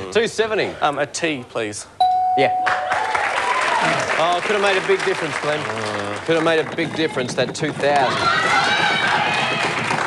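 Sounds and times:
electronic game show chime: 2.0s - 3.0s
audience applause: 2.7s - 10.0s.

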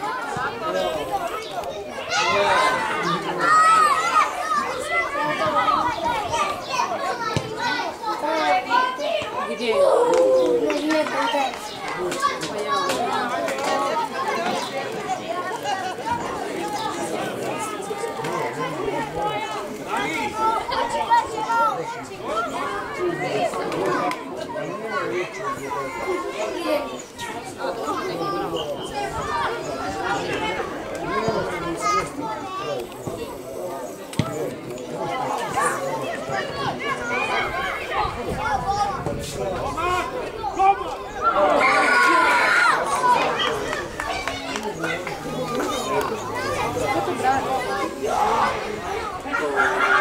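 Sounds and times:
children shouting during play: 0.0s - 50.0s.

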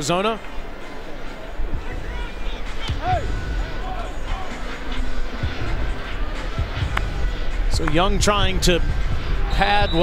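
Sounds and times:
low rumble of crowd: 0.0s - 10.0s
music in a stadium: 0.0s - 10.0s.

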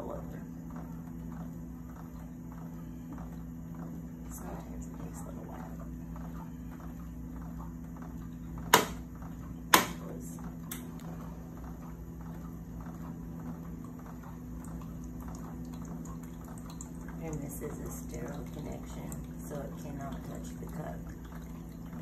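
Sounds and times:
machine humming: 0.0s - 22.0s
liquid trickling into plastic cup: 10.5s - 22.0s.

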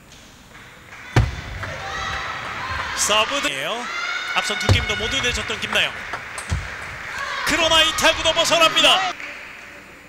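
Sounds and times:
murmur of large hall: 0.0s - 10.0s.

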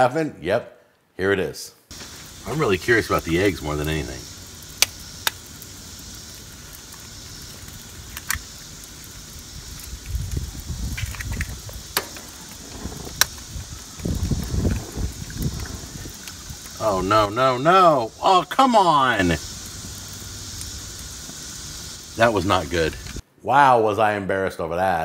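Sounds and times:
gas grill hiss: 1.9s - 23.2s
low rumbling noise: 2.0s - 18.3s.

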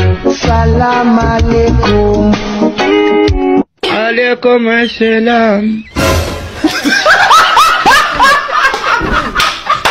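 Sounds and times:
man laughing hard: 6.6s - 9.9s.

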